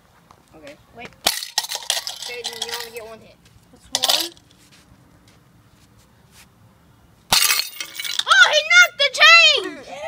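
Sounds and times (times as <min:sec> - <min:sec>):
high-pitched wordless yell: 0:08.2 - 0:10.0.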